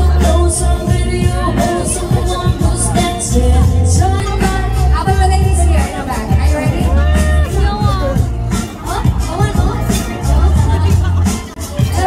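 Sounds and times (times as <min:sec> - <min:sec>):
song with pulsing bass beat: 0:00.0 - 0:12.0
woman singing into a microphone: 0:00.0 - 0:12.0.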